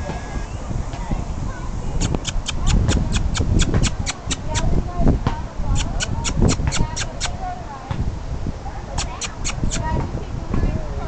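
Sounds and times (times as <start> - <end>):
sharp clicks: 2.0 - 4.6.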